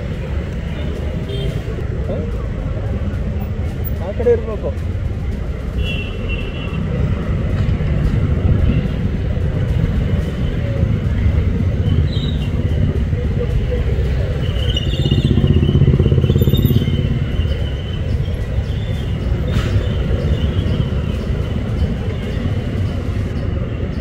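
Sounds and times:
street traffic: 0.0s - 24.0s
vehicle engine rumbling: 0.0s - 24.0s
indistinct voices: 6.8s - 24.0s.

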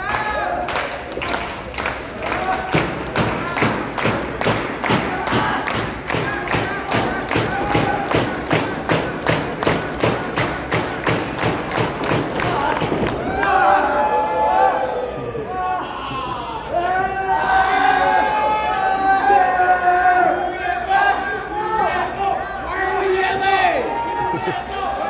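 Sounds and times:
steady rhythmic thumping: 2.7s - 13.4s.

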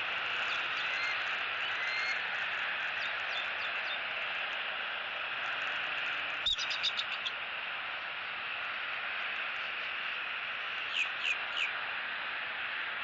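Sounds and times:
steady outdoor hiss: 0.0s - 13.0s.

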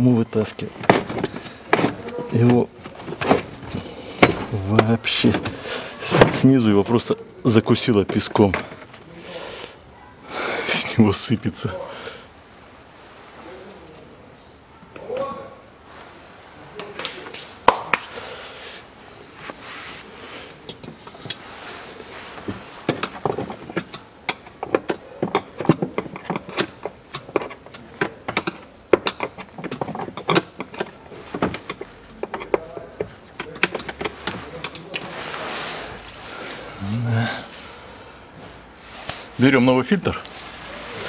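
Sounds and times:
rustling and scraping: 0.5s - 7.0s, 15.8s - 37.8s, 38.4s - 41.0s.

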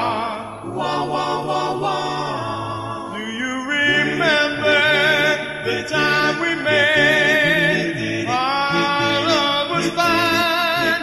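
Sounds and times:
doo-wop vocal harmony song: 0.0s - 11.0s.

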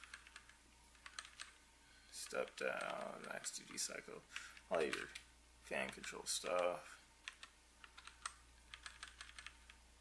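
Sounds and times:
keyboard keys clicking: 0.0s - 1.6s, 5.8s - 9.8s.

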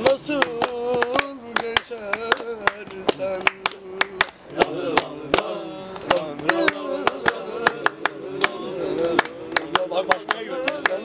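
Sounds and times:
man singing: 0.0s - 4.4s, 5.6s - 11.0s
hand claps: 0.0s - 11.0s.

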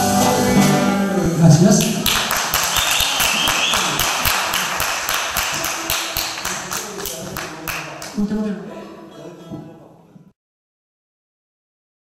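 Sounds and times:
small audience clapping: 1.8s - 8.3s.

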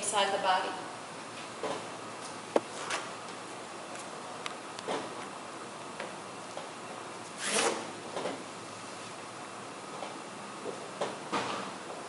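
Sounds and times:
steady room noise: 0.0s - 12.0s.

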